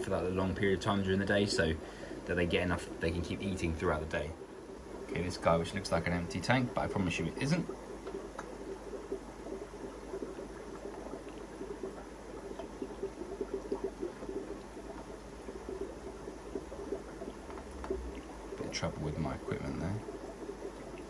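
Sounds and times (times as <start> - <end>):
aquarium water bubbling: 0.0 - 21.0.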